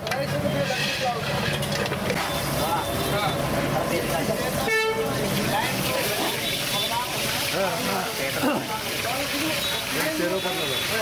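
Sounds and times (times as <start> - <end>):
traffic: 0.0 - 11.0
vehicle horn toot: 4.6 - 5.1, 9.6 - 11.0.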